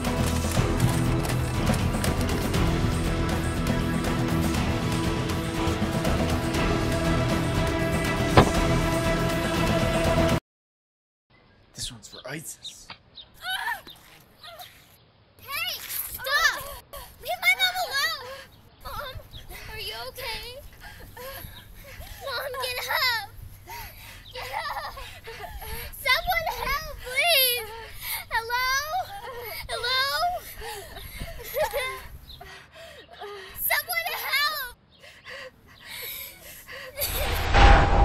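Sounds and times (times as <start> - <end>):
woman's high-pitched cry: 13.4 - 14.8, 16.2 - 21.5, 24.4 - 32.1
girl calling for help: 15.4 - 20.6, 22.2 - 23.3, 25.8 - 30.4, 33.6 - 34.8
girl wailing and sobbing: 24.4 - 32.0.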